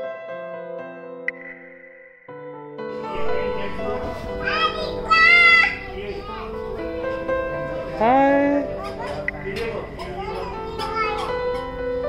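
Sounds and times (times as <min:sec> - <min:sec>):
background music: 0:00.0 - 0:12.0
child's high-pitched call: 0:04.4 - 0:05.8.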